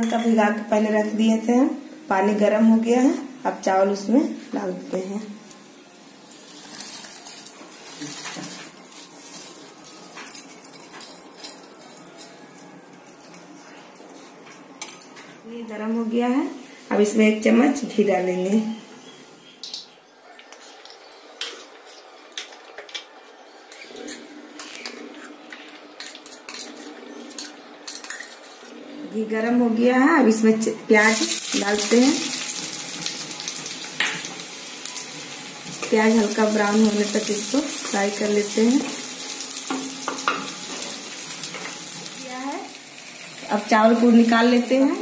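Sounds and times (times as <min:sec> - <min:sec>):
onions sizzling in pot: 0:00.4 - 0:13.3, 0:29.8 - 0:45.0
spoon tapping and scraping a pot: 0:39.7 - 0:40.8.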